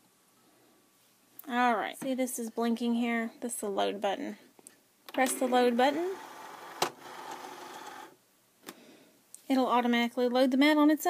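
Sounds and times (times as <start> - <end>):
cutting machine motor whir: 5.2 - 8.2.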